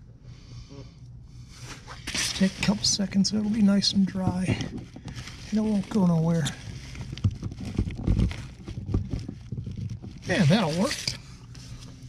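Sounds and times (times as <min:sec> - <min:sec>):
hand rubbing on fitting: 0:04.9 - 0:12.0.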